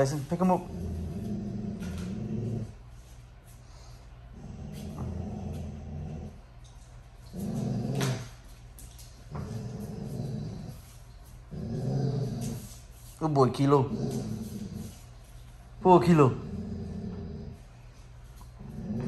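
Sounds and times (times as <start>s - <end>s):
dogs play-growling: 0.0s - 3.1s, 3.8s - 19.0s.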